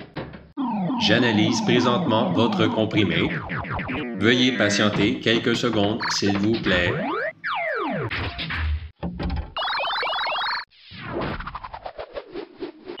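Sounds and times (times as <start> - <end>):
rapid warbling chirps: 0.6 - 4.9
electronic falling glide: 0.6 - 5.1.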